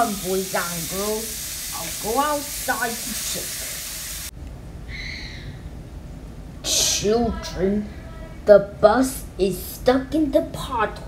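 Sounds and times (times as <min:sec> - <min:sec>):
hiss: 0:00.0 - 0:04.3.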